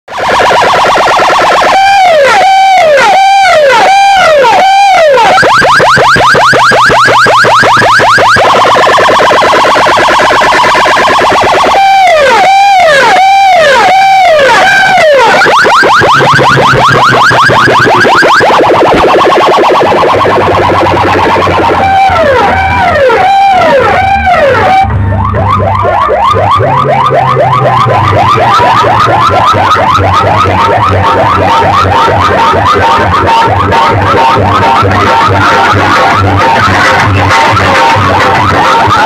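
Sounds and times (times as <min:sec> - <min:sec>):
electronic siren wailing: 0:00.1 - 0:39.0.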